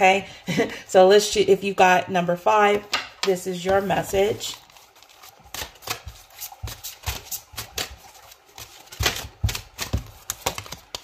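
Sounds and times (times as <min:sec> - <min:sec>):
cards being shuffled: 0:03.7 - 0:11.0.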